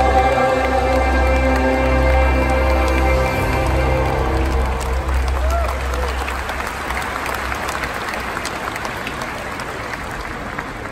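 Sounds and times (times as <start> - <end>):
stadium audience applauding: 0.0 - 10.9.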